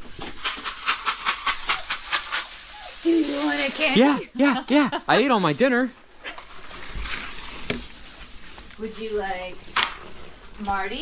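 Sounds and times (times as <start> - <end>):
candy bag rattling: 0.4 - 4.2.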